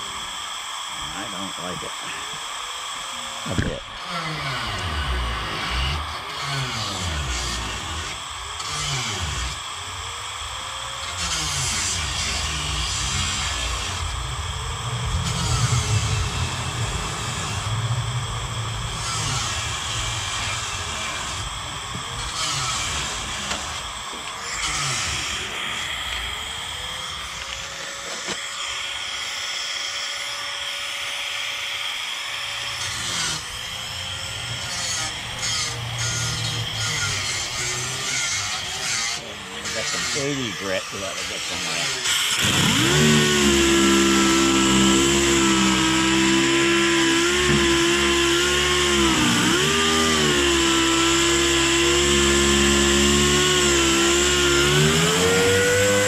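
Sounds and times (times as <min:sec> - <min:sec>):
power sander running: 0:00.0 - 0:56.0.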